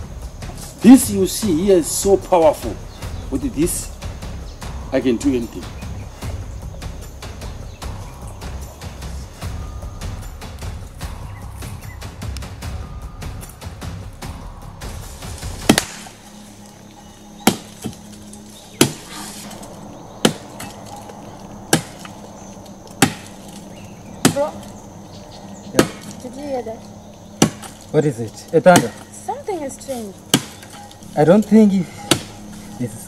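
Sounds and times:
steady low hum: 0.0 - 33.0
low rumble: 2.6 - 28.0
sharp cracks: 15.4 - 16.4, 17.5 - 24.8.

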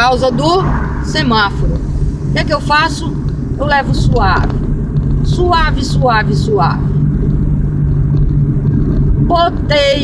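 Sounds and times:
car engine humming: 0.0 - 10.0
road noise rumble: 0.0 - 10.0.

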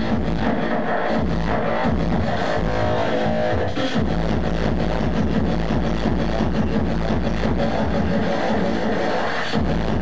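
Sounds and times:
loud electronic dance music: 0.0 - 10.0.

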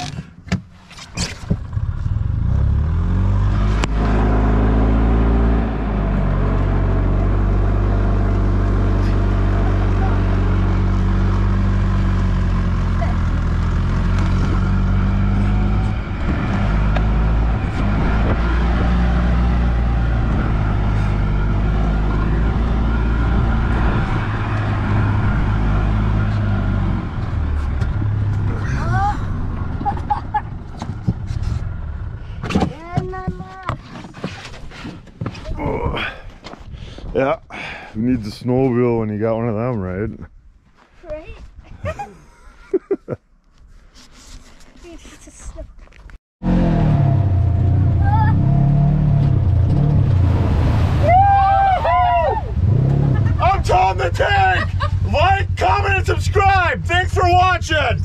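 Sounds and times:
golf cart engine running: 5.9 - 17.1, 52.5 - 58.0.

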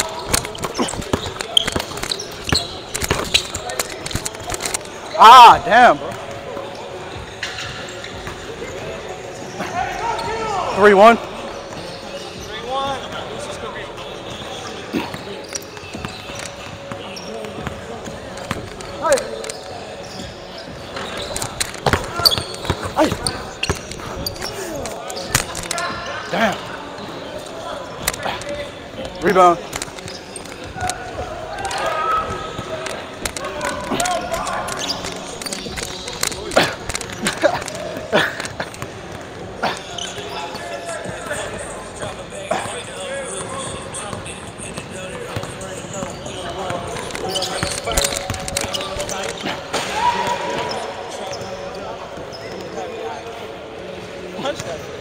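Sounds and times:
faint voices in large hall: 0.0 - 55.0.

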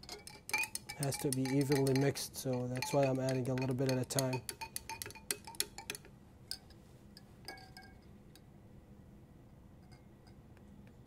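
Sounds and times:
glass rod clinking against beaker: 0.0 - 8.1.

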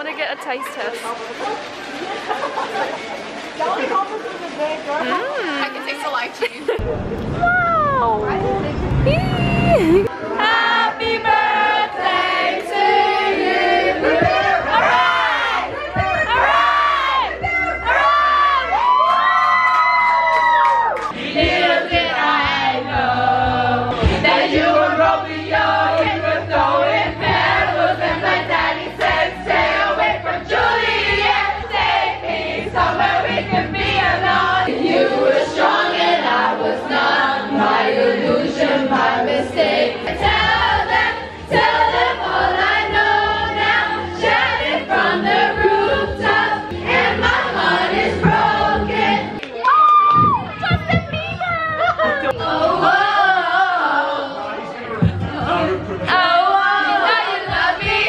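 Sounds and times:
group singing in unison: 10.0 - 18.6, 21.1 - 49.4, 52.0 - 58.0
karaoke backing track: 21.1 - 49.4, 50.1 - 58.0.

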